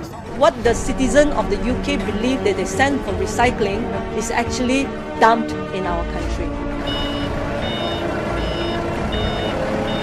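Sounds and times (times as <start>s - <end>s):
low engine hum: 6.5s - 10.0s
reversing alarm beeping: 6.8s - 10.0s.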